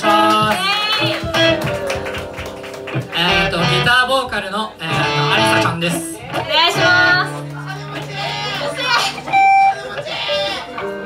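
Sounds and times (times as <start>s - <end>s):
electric guitar: 0.0s - 11.0s
scattered voices: 3.0s - 11.0s.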